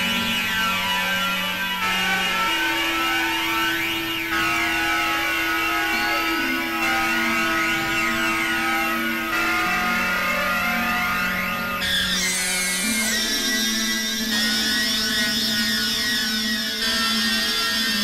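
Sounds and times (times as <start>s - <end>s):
synthesizer droning chords: 0.0s - 18.0s.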